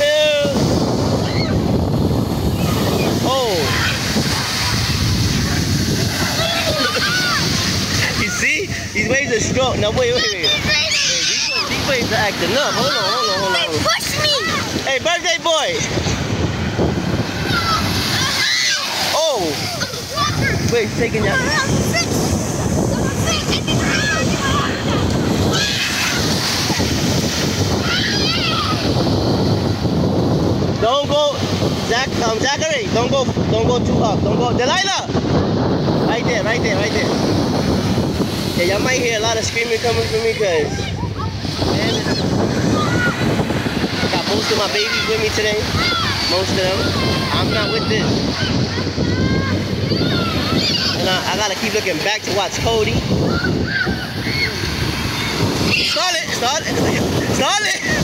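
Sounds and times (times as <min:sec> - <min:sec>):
ocean surf breaking: 0:00.0 - 0:58.0
wind buffeting microphone: 0:00.0 - 0:58.0
children calling out: 0:01.2 - 0:01.7, 0:06.1 - 0:08.6, 0:10.0 - 0:14.9, 0:17.2 - 0:29.2, 0:40.7 - 0:51.3, 0:53.2 - 0:56.9.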